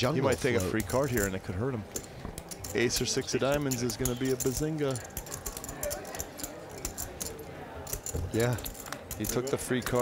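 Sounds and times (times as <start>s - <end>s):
clay poker chips clicking: 0.3s - 10.0s.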